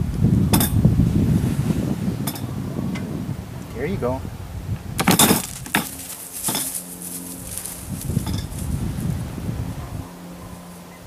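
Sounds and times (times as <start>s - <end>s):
wire cage clanking and rattling: 5.0s - 7.0s
handling and rustling: 5.0s - 8.8s.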